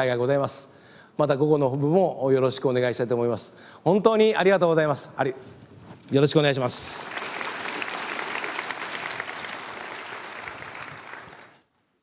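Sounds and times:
audience applauding: 0:06.9 - 0:11.7.

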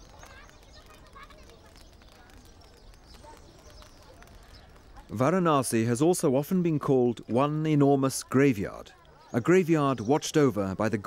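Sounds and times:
fire crackling: 0:00.0 - 0:09.3.

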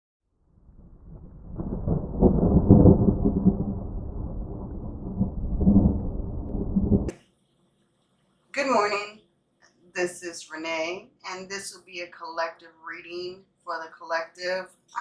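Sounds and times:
thunder rumbling: 0:00.4 - 0:07.1.

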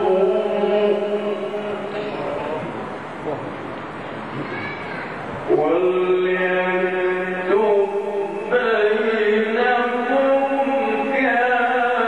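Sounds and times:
man chanting into microphone: 0:00.0 - 0:03.5, 0:05.5 - 0:12.0
background noise: 0:00.0 - 0:12.0.

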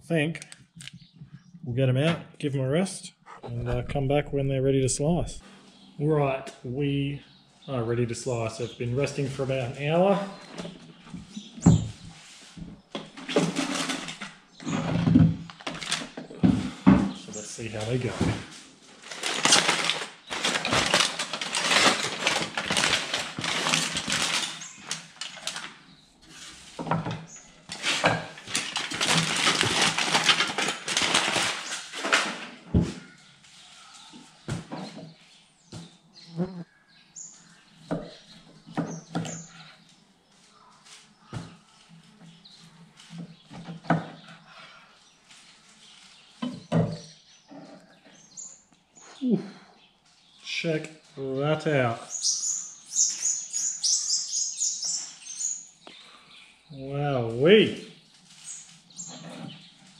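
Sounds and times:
aluminium foil crinkling: 0:15.6 - 0:16.1, 0:19.0 - 0:25.8, 0:27.7 - 0:32.4.

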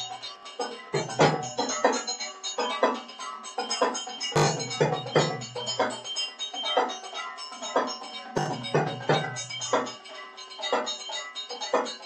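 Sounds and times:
drums in repeating rhythm: 0:00.0 - 0:03.1, 0:03.9 - 0:06.2, 0:07.6 - 0:10.0
bells ringing: 0:00.0 - 0:12.0.

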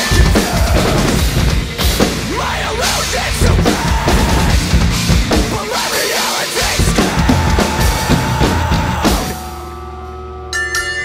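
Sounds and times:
acoustic drum kit played hard: 0:00.0 - 0:09.7
distorted heavy metal music: 0:00.0 - 0:11.0.

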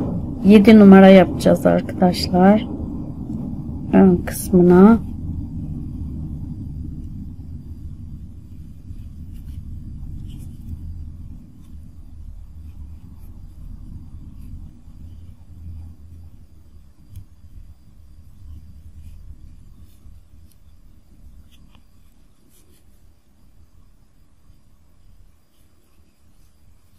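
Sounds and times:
low background rumble: 0:00.0 - 0:26.9
crochet needle clicks and rustles: 0:17.0 - 0:17.7, 0:18.3 - 0:23.1.

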